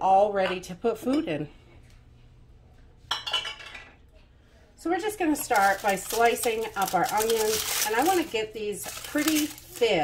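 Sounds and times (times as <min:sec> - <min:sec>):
kitchen items clattering: 0:04.9 - 0:10.0.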